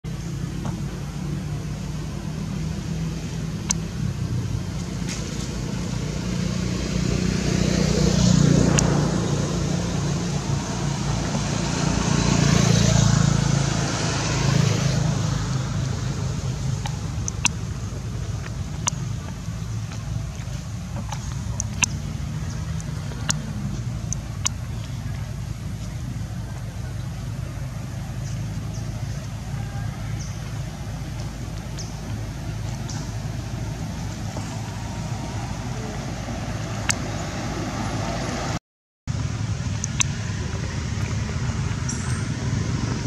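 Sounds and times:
road traffic rumble: 0:00.0 - 0:43.0
vehicles passing: 0:00.0 - 0:43.0.

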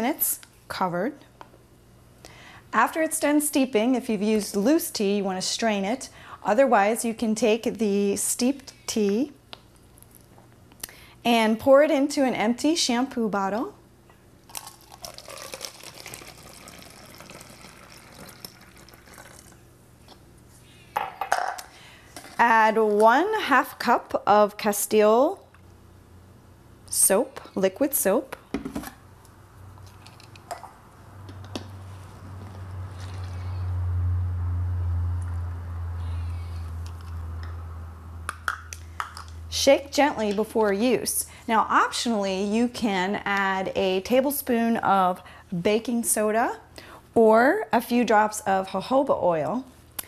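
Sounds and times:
low steady hum: 0:00.0 - 0:50.0
liquid trickling into bottle: 0:14.6 - 0:19.6.

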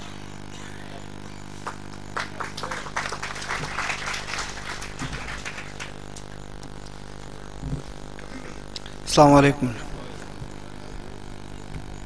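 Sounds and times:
electrical hum: 0:00.0 - 0:12.0
audience applauding: 0:01.6 - 0:06.4.

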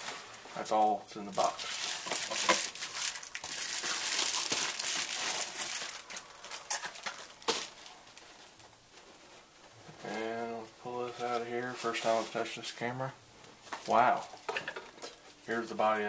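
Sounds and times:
bubble wrap crinkling: 0:00.0 - 0:13.0, 0:13.6 - 0:16.0.

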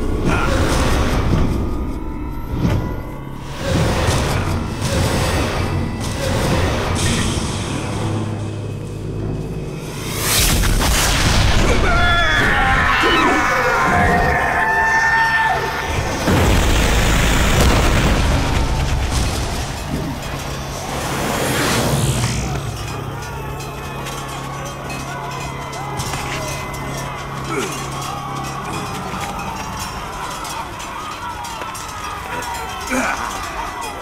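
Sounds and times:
low music drone: 0:00.0 - 0:34.0
whoosh: 0:09.6 - 0:11.8
people shouting: 0:11.5 - 0:21.6, 0:22.3 - 0:34.0.

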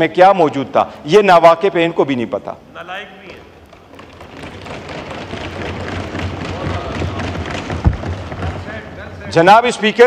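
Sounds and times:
people thumping desks: 0:03.3 - 0:09.4.

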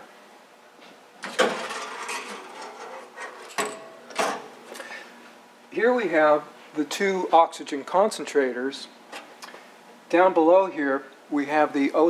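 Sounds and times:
metal cover scraping and rattling: 0:01.2 - 0:04.4.

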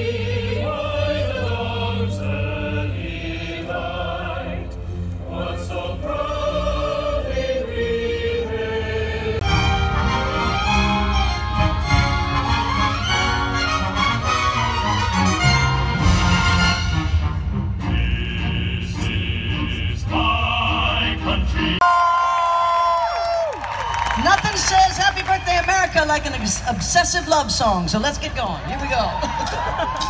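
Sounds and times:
orchestra and chorus performing: 0:00.0 - 0:21.8.

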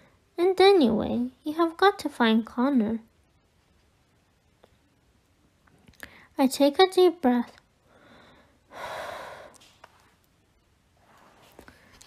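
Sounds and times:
woman breathing deeply: 0:07.8 - 0:09.8.

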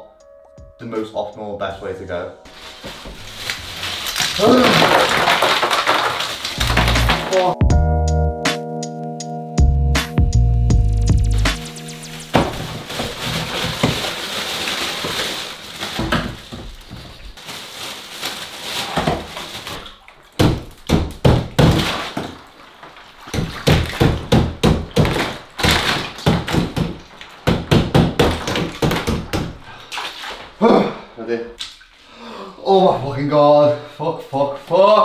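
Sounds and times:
ice rattling in water: 0:02.5 - 0:07.6, 0:12.2 - 0:30.2
ice cubes knocking against tub: 0:03.4 - 0:07.6, 0:12.3 - 0:17.1, 0:18.8 - 0:29.6.

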